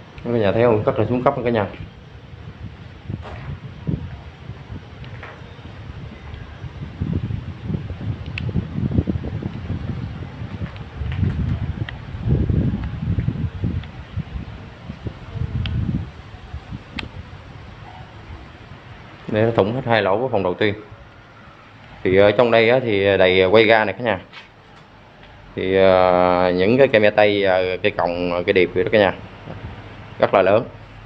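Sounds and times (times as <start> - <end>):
wind buffeting microphone: 0.0 - 24.1, 25.6 - 30.1.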